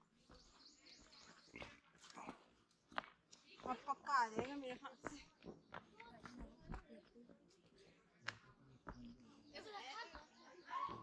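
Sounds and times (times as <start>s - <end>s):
bird chirping: 0.0s - 2.3s.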